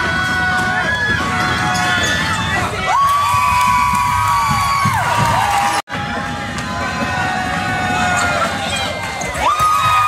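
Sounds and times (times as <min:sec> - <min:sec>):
crowd noise in a gym: 0:00.0 - 0:10.0.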